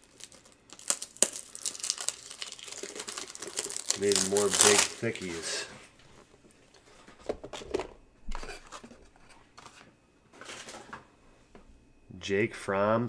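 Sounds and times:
cards rustling: 0.1s - 5.7s.

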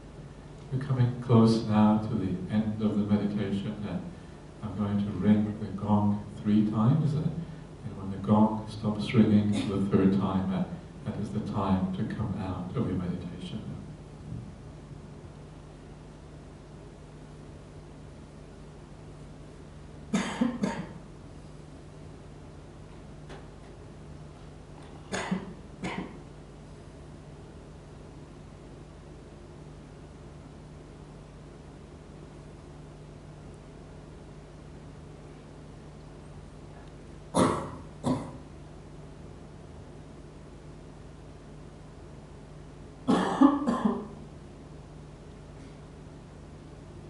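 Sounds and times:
person coughing: 9.5s - 9.9s, 20.1s - 21.0s, 25.0s - 26.2s, 37.3s - 38.4s, 43.1s - 44.2s.

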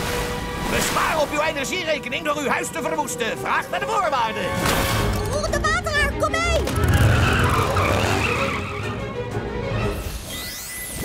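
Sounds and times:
tyres screeching: 6.6s - 9.0s.

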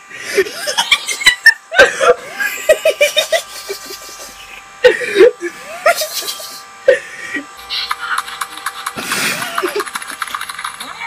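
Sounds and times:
steady electronic buzz: 0.0s - 11.0s
person's voice and laughter: 0.2s - 10.3s.

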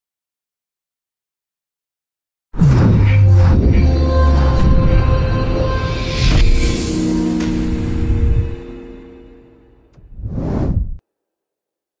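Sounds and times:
whoosh sound effect: 10.0s - 11.0s.

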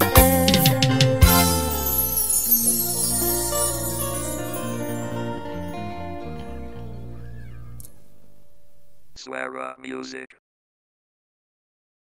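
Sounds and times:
low bass note music: 0.0s - 8.9s
rising falling synth glide: 1.3s - 8.4s.

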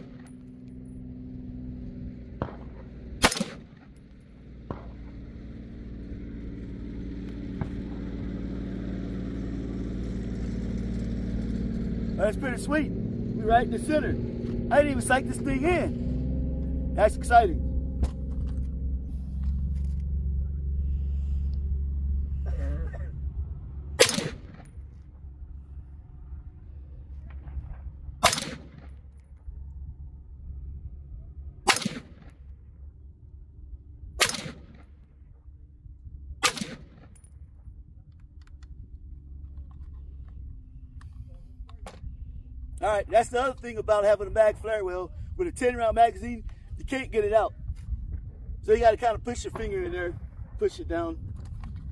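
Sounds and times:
low steady rumble: 0.0s - 51.9s
rifle shots: 2.4s - 4.0s, 24.0s - 24.7s, 28.2s - 29.0s, 31.6s - 32.4s, 34.2s - 34.9s, 36.4s - 37.2s.

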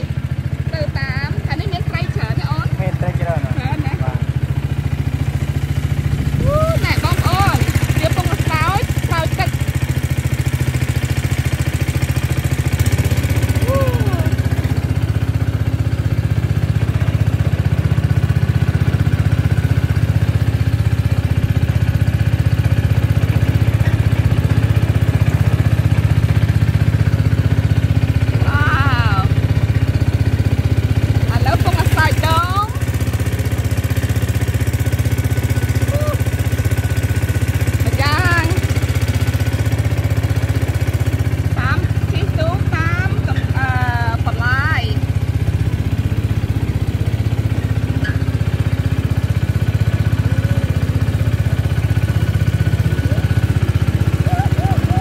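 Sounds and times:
small boat engine running: 0.0s - 55.0s.

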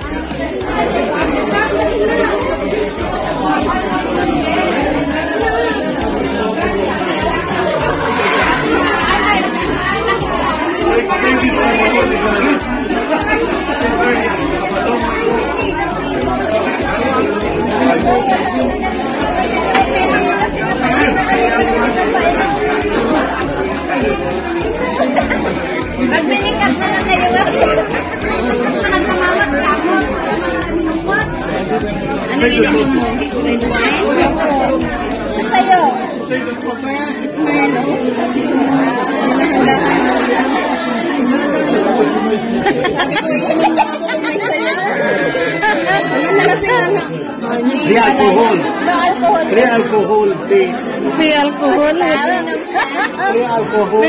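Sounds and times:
babble of conversation: 0.0s - 54.0s
background music: 0.0s - 54.0s.

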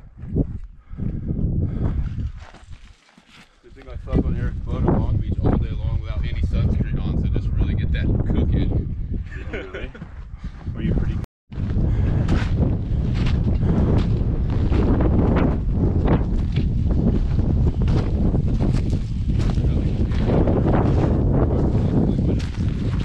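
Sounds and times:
wind buffeting microphone: 0.0s - 2.8s, 3.7s - 23.0s
boots crunching on scree: 2.3s - 3.6s, 16.3s - 21.1s.

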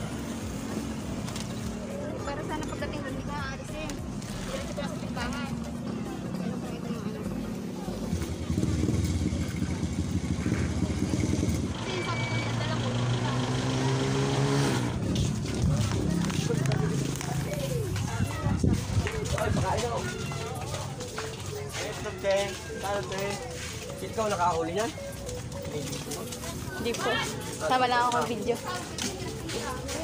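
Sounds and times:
voices: 0.0s - 30.0s
motorcycle engine running: 7.9s - 17.9s.

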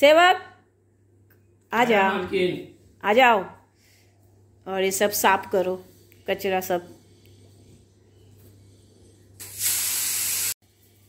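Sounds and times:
loud steady hiss: 9.4s - 10.6s.

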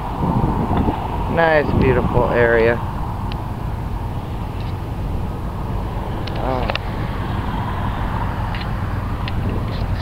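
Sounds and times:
road traffic hum: 0.0s - 10.0s
wind buffeting microphone: 0.0s - 10.0s.

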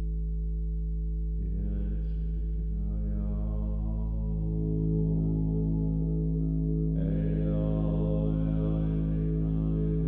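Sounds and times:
synthesizer low drone: 0.0s - 10.0s.

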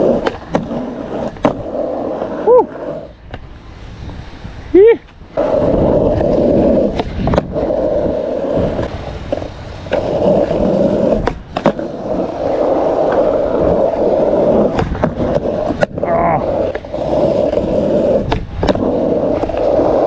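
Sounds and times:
skateboard wheels rolling on asphalt: 0.0s - 20.0s.

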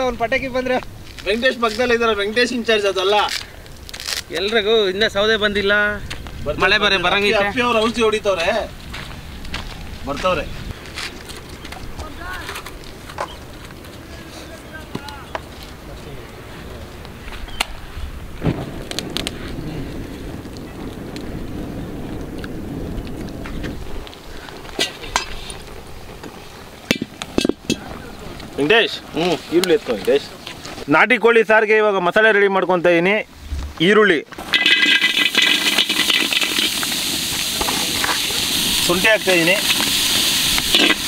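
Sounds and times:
wood fire flames rushing: 0.0s - 31.0s, 33.3s - 41.0s
fire crackles and pops: 0.0s - 31.1s, 33.3s - 41.0s
onions sizzling in hot oil: 34.4s - 41.0s.

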